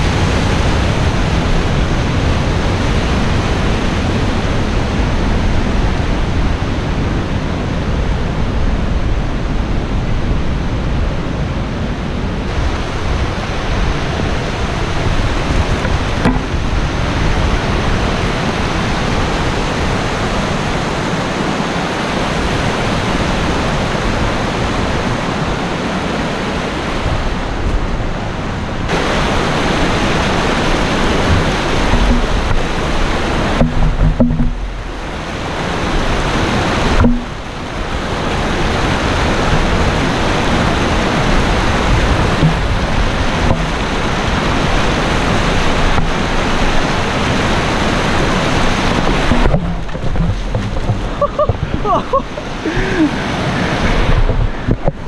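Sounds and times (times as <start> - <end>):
stream rushing over rocks: 0.0 - 55.0.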